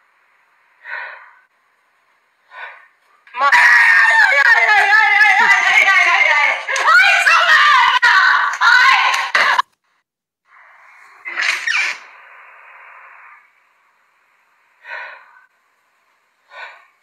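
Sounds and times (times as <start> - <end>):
high-pitched voice screaming: 3.4 - 5.5.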